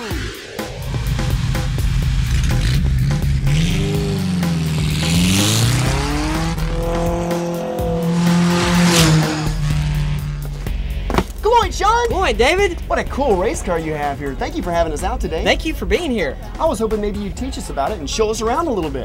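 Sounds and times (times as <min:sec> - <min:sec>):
race car engine at speed: 0:00.0 - 0:10.8
background music with steady beat: 0:00.0 - 0:19.0.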